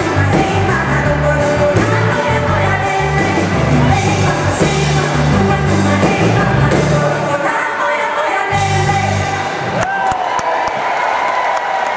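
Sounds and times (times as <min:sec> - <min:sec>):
women singing: 0:00.0 - 0:09.6
live pop band: 0:00.0 - 0:10.1
crowd cheering and applause: 0:09.2 - 0:11.9.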